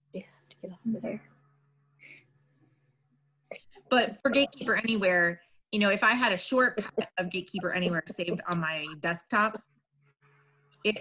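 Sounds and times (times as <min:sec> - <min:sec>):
murmured speech over video call: 0:00.0 - 0:09.8, 0:10.4 - 0:11.0.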